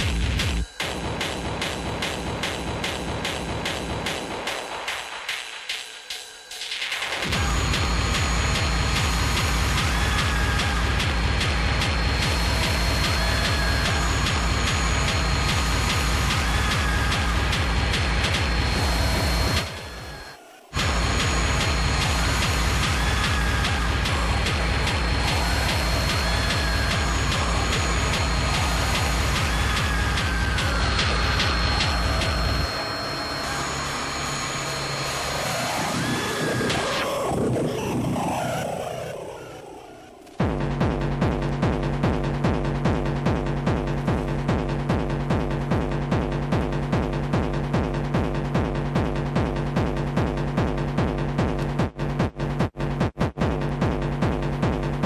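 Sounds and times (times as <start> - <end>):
kick drum: 0.0 - 4.6, 7.2 - 20.0, 40.4 - 55.0
layered synths: 0.0 - 41.0
synth sweeps: 17.9 - 40.4.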